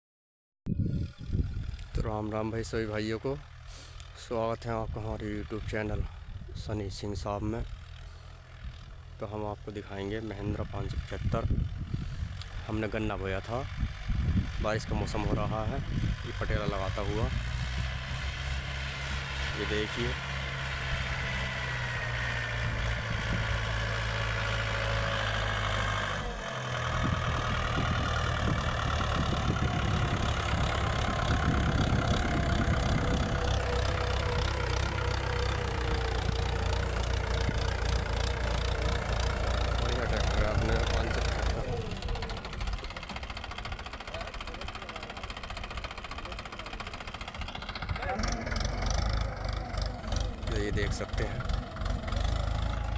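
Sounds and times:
tractor diesel engine running: 0:00.7 - 0:52.9.

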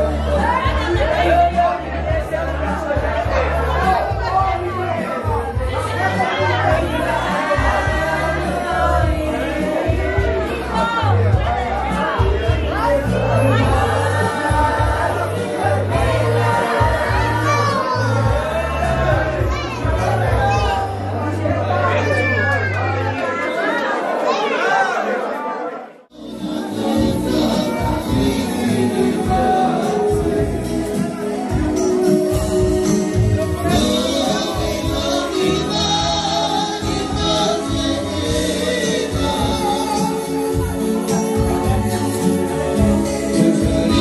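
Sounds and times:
party band music: 0:00.0 - 0:22.7, 0:26.1 - 0:44.0
guests chattering: 0:00.0 - 0:44.0
people talking over one another: 0:00.0 - 0:44.0.

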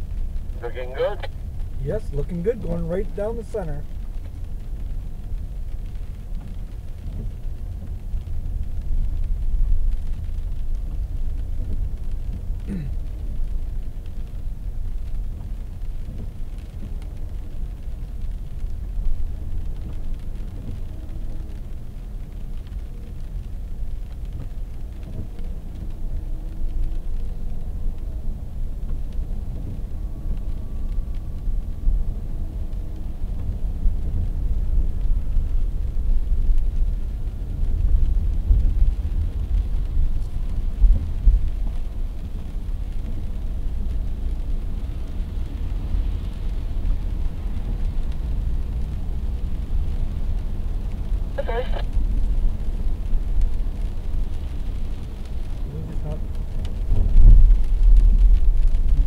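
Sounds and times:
car driving on wet road: 0:00.0 - 0:59.0.

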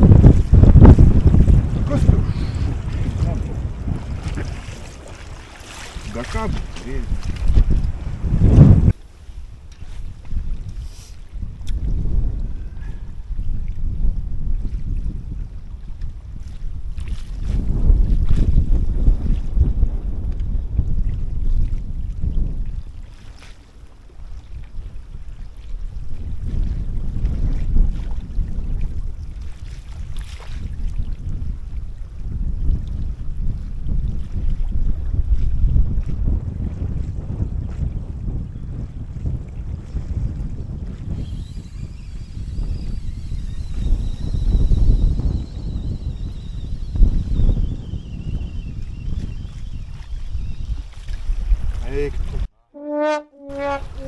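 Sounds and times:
gusting wind on microphone: 0:00.0 - 0:54.0.

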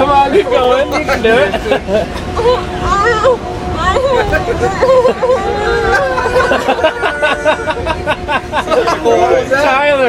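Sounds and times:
bus rumbling: 0:00.0 - 0:10.0
teenagers laughing and chattering: 0:00.0 - 0:10.0.

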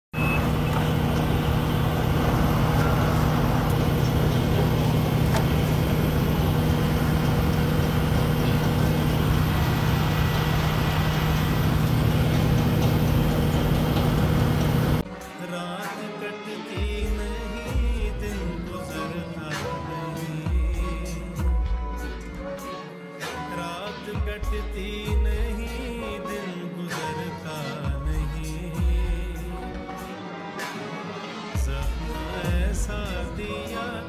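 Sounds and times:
crane engine running: 0:00.1 - 0:15.0.

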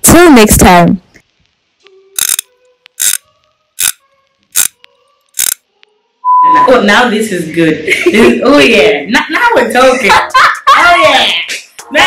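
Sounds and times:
ratchet-like noisy bursts: 0:02.1 - 0:05.7.

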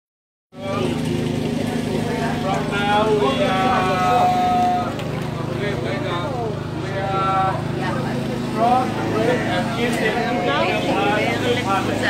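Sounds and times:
low engine hum: 0:00.6 - 0:12.0
people's voices: 0:00.6 - 0:12.0.

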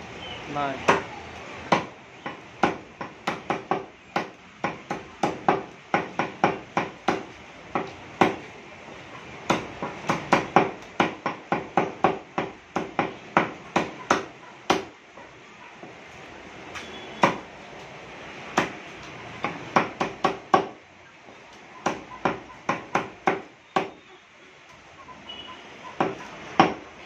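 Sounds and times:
cleaver chopping on wooden block: 0:01.7 - 0:08.4, 0:09.5 - 0:14.9, 0:19.4 - 0:20.8, 0:21.8 - 0:24.0.

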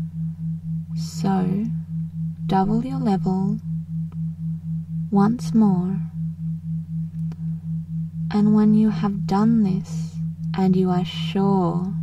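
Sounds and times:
pulsing low sine tone: 0:00.0 - 0:12.0
steady low drone: 0:00.0 - 0:12.0.

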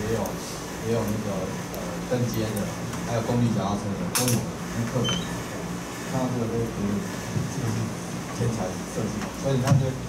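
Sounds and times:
man talking: 0:06.1 - 0:10.0.

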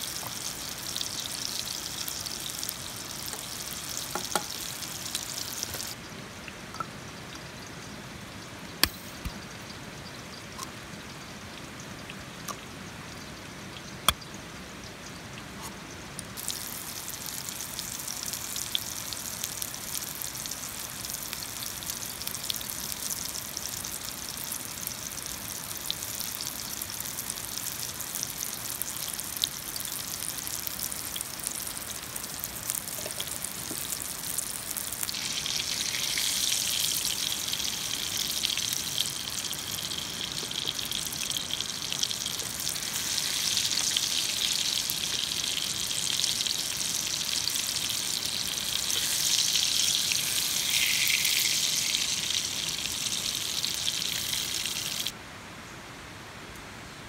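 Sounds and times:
tomatoes sizzling in hot oil: 0:00.0 - 0:55.2.

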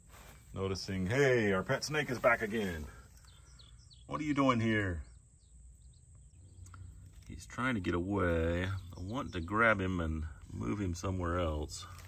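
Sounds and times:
distant bird chirps: 0:00.0 - 0:12.0.

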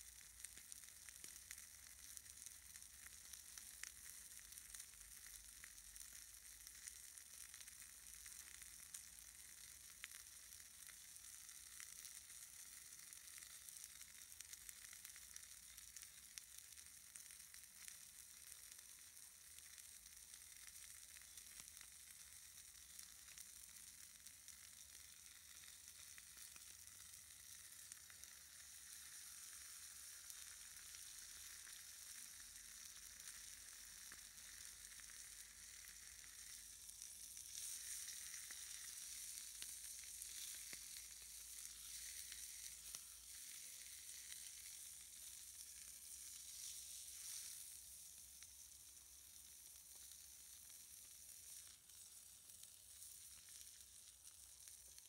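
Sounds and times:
meat sizzling in a frying pan: 0:00.0 - 0:55.0.

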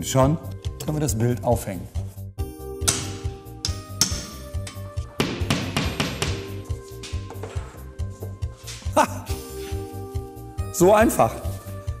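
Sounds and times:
background music with steady beat: 0:00.0 - 0:12.0
hammer striking a nail: 0:02.8 - 0:06.6.

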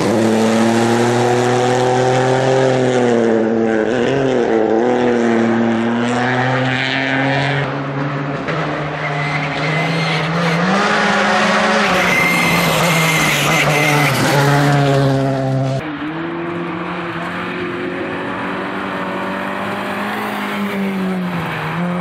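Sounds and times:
rally car engines: 0:00.0 - 0:22.0.

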